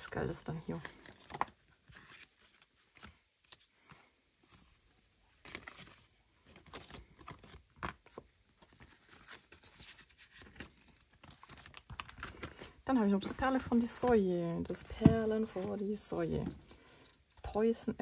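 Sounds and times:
plastic pocket crinkling: 5.4 - 13.4.

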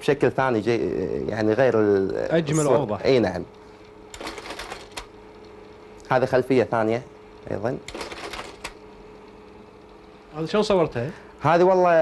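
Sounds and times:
faint steady hum: 0.0 - 12.0
slide projector clicking: 3.4 - 6.2, 7.4 - 10.2.

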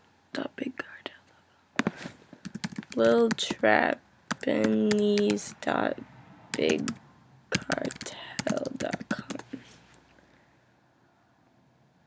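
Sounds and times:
keyboard keystrokes: 2.4 - 3.6, 4.3 - 5.6, 6.5 - 7.0, 7.6 - 9.5.

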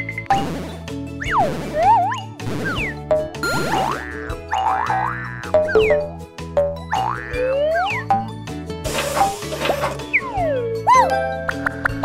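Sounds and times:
playful cartoon music: 0.0 - 12.0
springy boing sound effects: 1.3 - 6.1.

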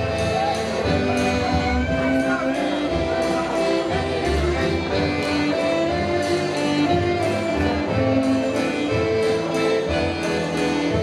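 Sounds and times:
accordion: 0.0 - 11.0
bowed violin melody: 0.0 - 11.0.

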